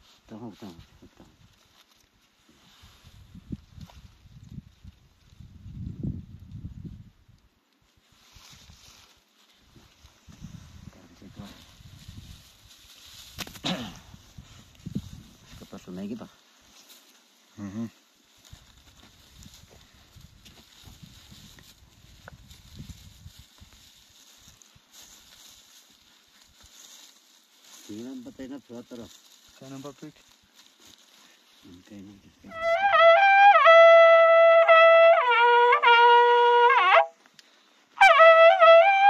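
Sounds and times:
dry straw rustling: 0:00.0 - 0:39.0.

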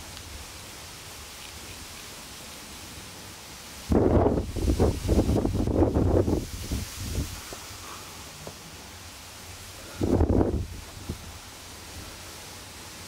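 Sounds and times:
crackling noise on microphone: 0:00.0 - 0:02.8, 0:03.8 - 0:09.1
outdoor hiss: 0:00.0 - 0:13.0.

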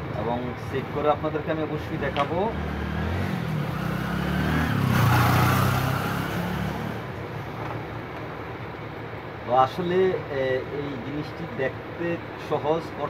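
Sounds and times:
vehicle passing: 0:01.8 - 0:07.6.

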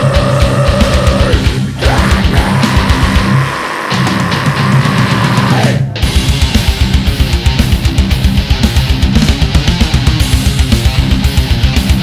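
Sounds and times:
distorted guitars: 0:00.0 - 0:12.0.

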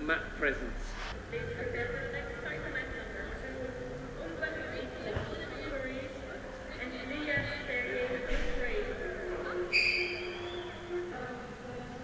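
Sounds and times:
steady held tone: 0:00.0 - 0:04.7
shrill whistle: 0:09.7 - 0:10.8.

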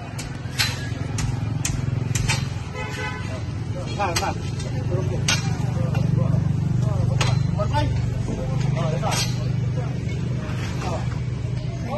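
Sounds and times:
people talking: 0:03.0 - 0:11.9.

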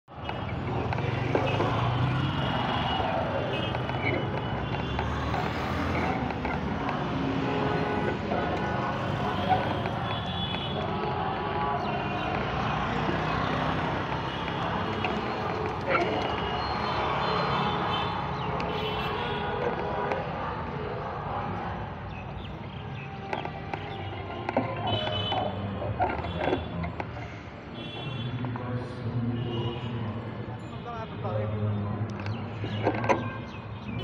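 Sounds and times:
traffic noise: 0:00.0 - 0:34.0
people talking: 0:00.2 - 0:21.9, 0:28.4 - 0:33.1.

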